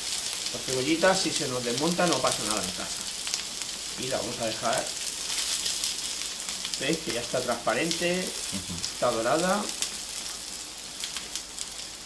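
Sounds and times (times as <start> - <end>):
oil crackling: 0.0 - 12.0
potatoes and onion sizzling in oil: 0.0 - 12.0.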